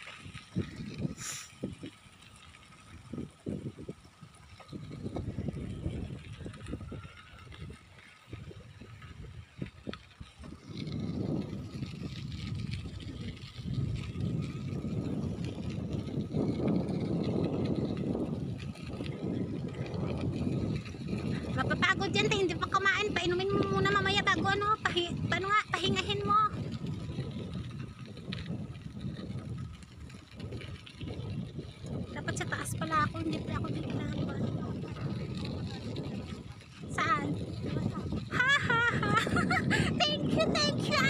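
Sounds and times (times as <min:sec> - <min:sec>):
bicycle tyres rolling on path: 0:00.0 - 0:41.0
wind buffeting microphone: 0:00.0 - 0:41.0.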